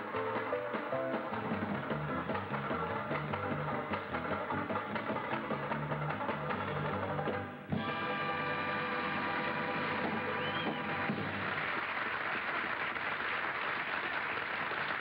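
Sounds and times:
banjo picking fast tune: 0:00.0 - 0:10.4.

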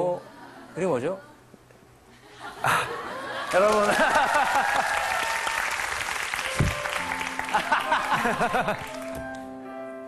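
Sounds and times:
studio audience laughing: 0:02.1 - 0:05.2, 0:07.4 - 0:09.0
audience applauding: 0:02.7 - 0:09.4.

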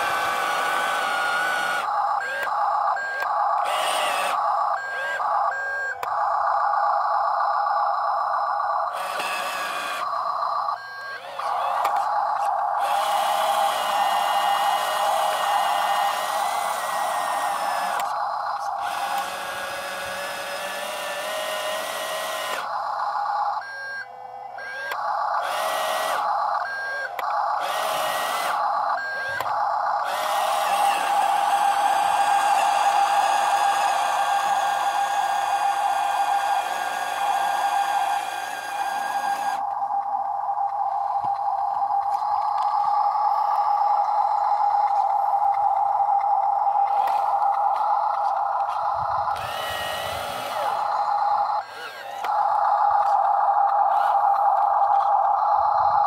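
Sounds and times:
toy truck electric motor whining: 0:00.0 - 0:56.0.

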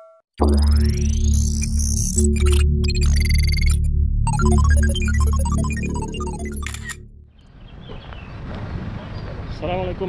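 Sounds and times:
electronic jingle melody: 0:00.4 - 0:07.3
camera shutter sound effect: 0:05.6 - 0:07.0.

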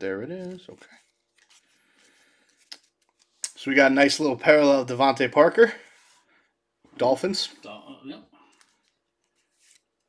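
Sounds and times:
trading cards handled: 0:00.3 - 0:03.6, 0:08.5 - 0:10.0.

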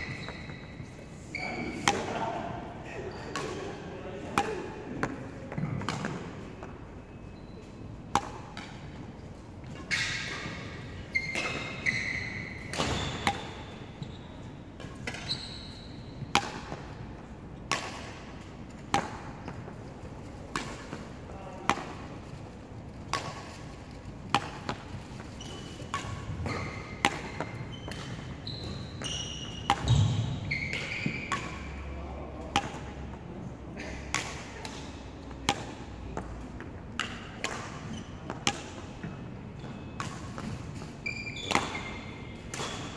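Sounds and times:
shoes squeaking on wooden floor: 0:00.0 - 0:01.8, 0:09.7 - 0:14.4, 0:15.2 - 0:16.0, 0:25.0 - 0:31.8, 0:39.6 - 0:42.8
rackets striking shuttlecock: 0:01.7 - 0:02.2, 0:03.2 - 0:06.7, 0:08.0 - 0:14.1, 0:14.7 - 0:15.5, 0:16.2 - 0:17.0, 0:17.6 - 0:19.8, 0:20.4 - 0:22.4, 0:23.0 - 0:31.8, 0:32.4 - 0:33.2, 0:34.1 - 0:42.9
badminton racket hitting shuttlecock: 0:12.7 - 0:13.8, 0:16.3 - 0:16.8, 0:24.3 - 0:28.3, 0:29.3 - 0:31.8, 0:34.1 - 0:35.8.

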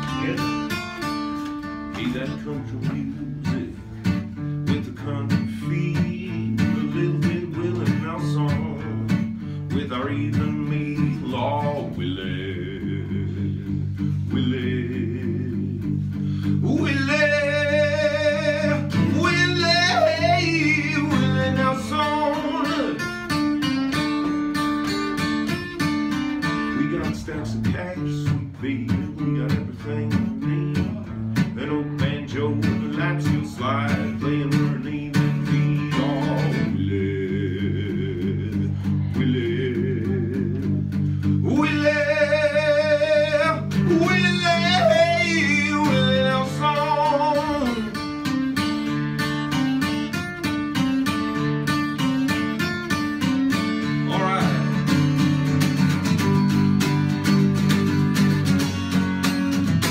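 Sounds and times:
man singing: 0:00.0 - 0:57.2
acoustic guitar: 0:00.0 - 0:59.9.

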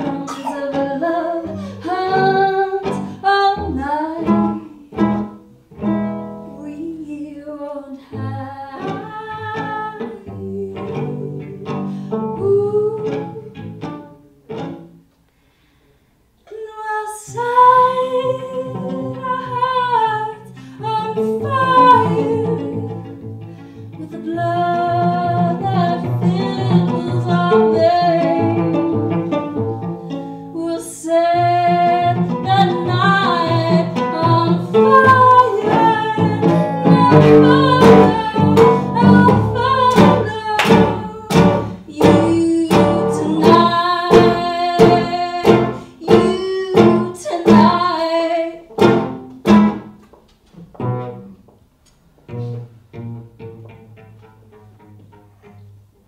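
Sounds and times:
sharp guitar strums: 0:00.0 - 0:02.3, 0:34.8 - 0:47.8, 0:48.7 - 0:50.0
acoustic guitar melody: 0:00.0 - 0:07.0, 0:08.2 - 0:15.2, 0:17.7 - 0:56.0
cello melody: 0:00.0 - 0:15.1, 0:17.2 - 0:56.0.

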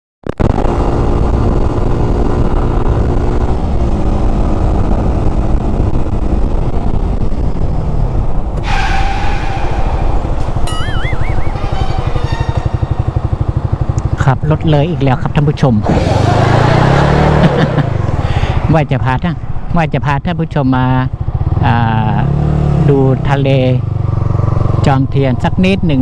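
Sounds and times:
wind noise: 0:00.3 - 0:14.4
road noise: 0:00.3 - 0:26.0
motorcycle engine running: 0:00.4 - 0:08.8, 0:09.4 - 0:18.8, 0:20.8 - 0:26.0.

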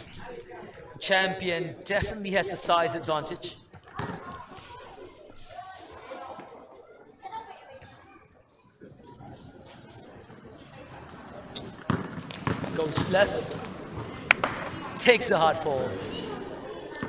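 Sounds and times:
faint voices: 0:00.0 - 0:17.0
basketball bouncing: 0:11.8 - 0:14.8.

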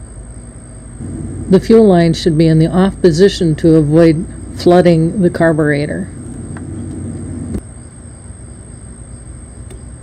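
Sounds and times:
low rumble: 0:01.0 - 0:07.6
thin high whine: 0:01.0 - 0:07.6.

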